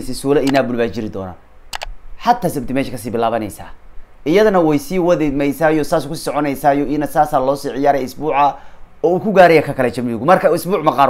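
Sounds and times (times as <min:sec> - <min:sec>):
man speaking: 0:00.0 - 0:01.4, 0:02.2 - 0:11.0.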